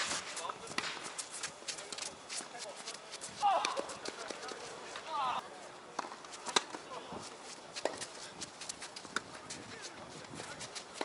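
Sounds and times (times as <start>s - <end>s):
footsteps on hard court: 0.0s - 5.4s, 6.0s - 11.0s.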